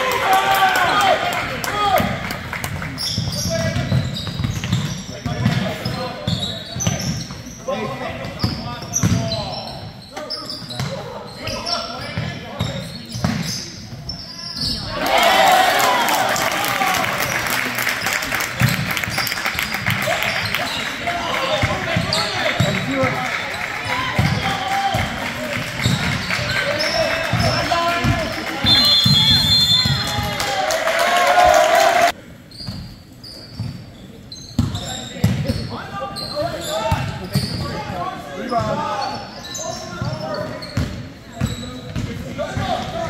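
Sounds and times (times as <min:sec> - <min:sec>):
crowd noise: 0:00.0 - 0:32.5
voices echoing in gym: 0:00.0 - 0:43.0
sneakers squeaking: 0:02.9 - 0:15.3, 0:17.2 - 0:30.2, 0:32.4 - 0:43.0.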